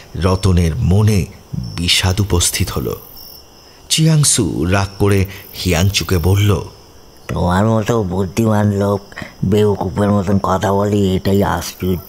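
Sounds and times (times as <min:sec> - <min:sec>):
narrator speaking: 0:00.0 - 0:03.2, 0:03.9 - 0:12.0
crickets chirping: 0:00.0 - 0:12.0.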